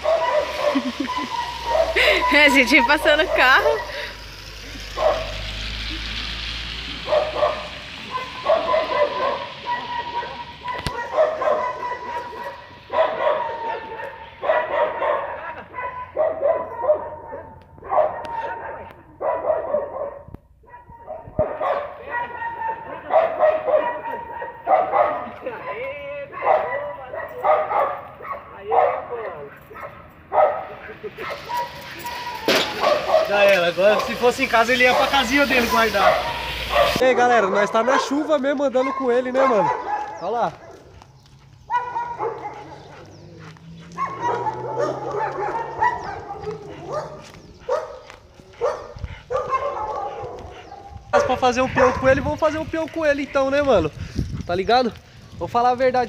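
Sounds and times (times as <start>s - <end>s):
dog barking and yipping: 0.0s - 5.9s, 6.9s - 52.5s.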